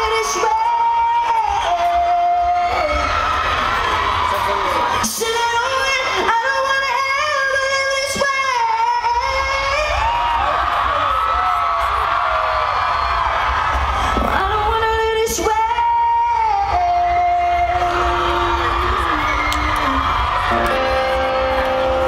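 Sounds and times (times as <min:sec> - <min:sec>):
person singing: 0:00.0 - 0:03.1, 0:14.2 - 0:22.0
live rock band playing loudly: 0:20.4 - 0:22.0.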